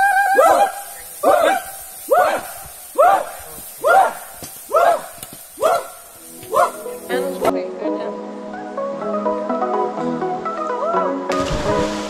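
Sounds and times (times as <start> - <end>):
men shouting a chant: 0.0 - 7.1
music: 6.2 - 12.0.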